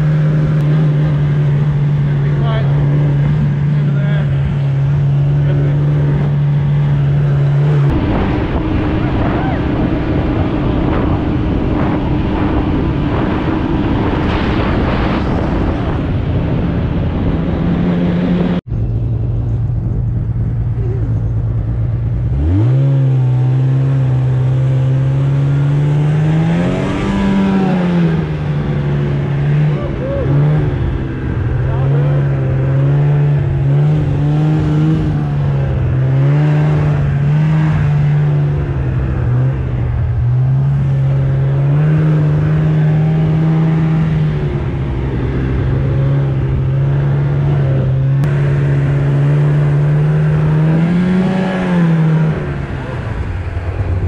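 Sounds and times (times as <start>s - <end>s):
snowmobile engine revving: 0.0s - 18.7s, 19.8s - 54.0s.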